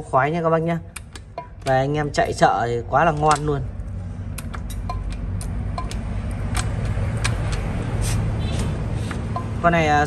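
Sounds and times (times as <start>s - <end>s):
sharp metallic clicks: 0.8s - 9.9s.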